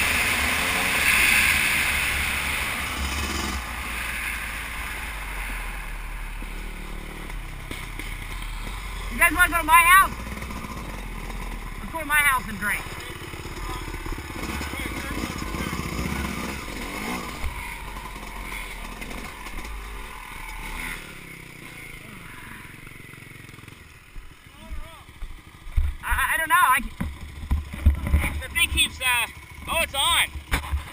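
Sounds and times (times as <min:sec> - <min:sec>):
dirt bike engine idling: 0:00.0 - 0:30.9
knocks and bumps near microphone: 0:27.0 - 0:28.4.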